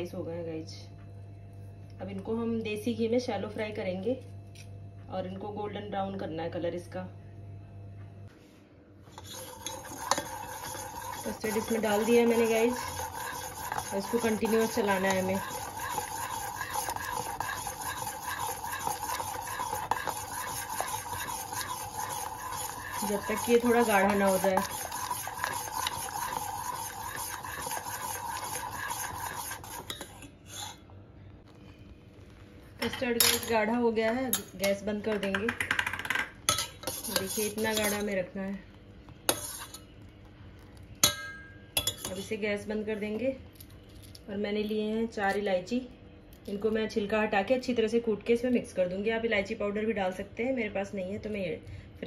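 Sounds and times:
spoon scraping a saucepan: 0:09.1 - 0:30.9, 0:35.7 - 0:38.2, 0:39.3 - 0:40.0, 0:41.8 - 0:42.4
spoon clinking on metal pot: 0:34.3 - 0:38.1, 0:41.0 - 0:42.3.

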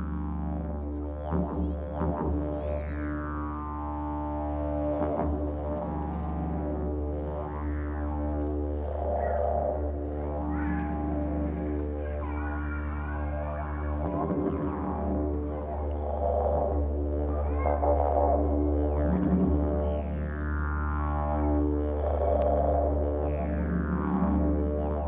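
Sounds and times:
didgeridoo drone: 0:00.0 - 0:25.0.

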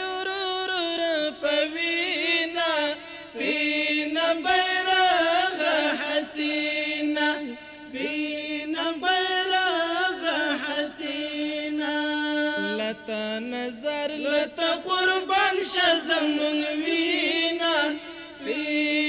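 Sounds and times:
men chanting into microphones: 0:00.0 - 0:19.0.

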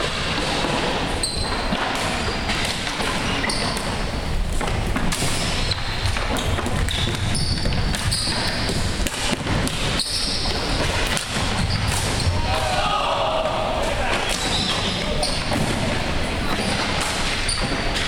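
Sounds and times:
sneakers squeaking: 0:00.1 - 0:12.6, 0:13.6 - 0:18.0.

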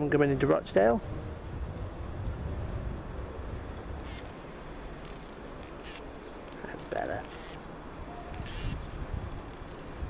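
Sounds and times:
faint short calls: 0:05.7 - 0:09.0.

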